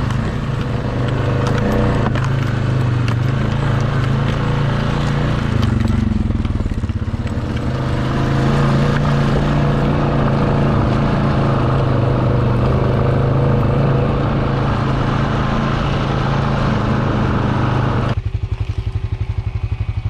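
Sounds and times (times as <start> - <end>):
atv engine running: 0.0 - 20.0.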